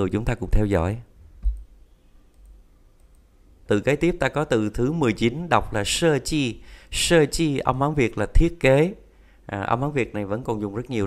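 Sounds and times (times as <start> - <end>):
faint clicks: 2.3 - 3.3.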